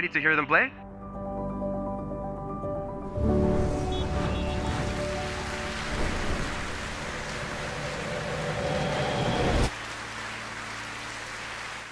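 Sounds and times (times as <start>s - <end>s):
audience applauding: 3.9s - 11.9s.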